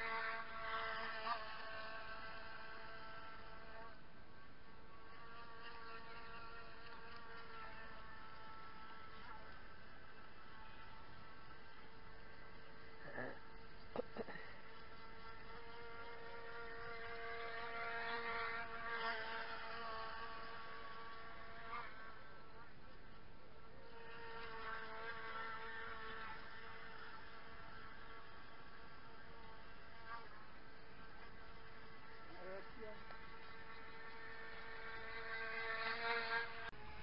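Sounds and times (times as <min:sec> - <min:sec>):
model boat motor whining: 0:00.0 - 0:37.0.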